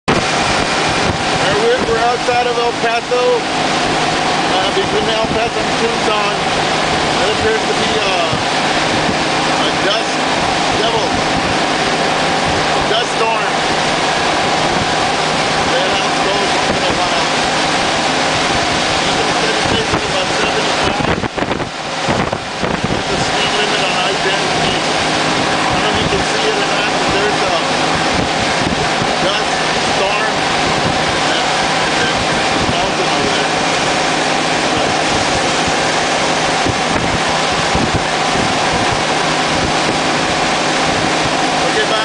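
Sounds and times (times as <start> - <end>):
motorcycle engine drone: 0.0 - 42.0
road noise: 0.0 - 42.0
wind rush on microphone: 0.0 - 42.0.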